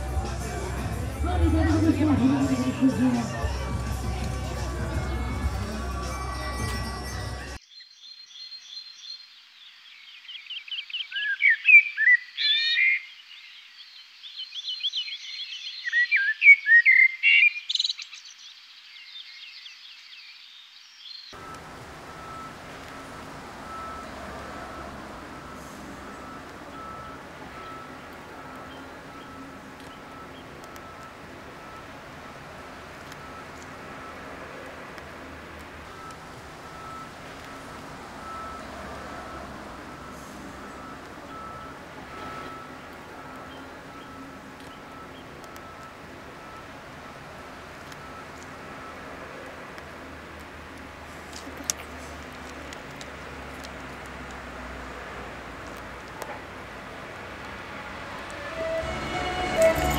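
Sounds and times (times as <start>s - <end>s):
crowd noise: 0.0s - 7.6s, 58.3s - 59.9s
music: 0.0s - 7.6s, 58.5s - 59.9s
outdoor background hiss: 0.0s - 11.4s, 17.6s - 59.9s
birds chirping: 21.0s - 59.9s.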